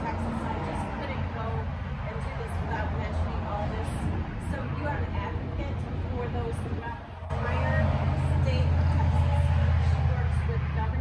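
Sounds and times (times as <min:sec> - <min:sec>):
steady low rumble: 0:00.0 - 0:11.0
woman speaking: 0:00.0 - 0:11.0.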